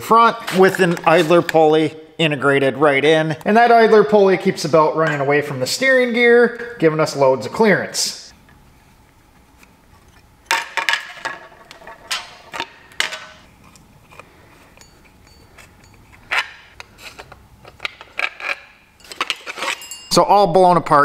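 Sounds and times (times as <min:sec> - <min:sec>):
clinks and scrapes of unbolting parts: 0:10.0 - 0:20.2.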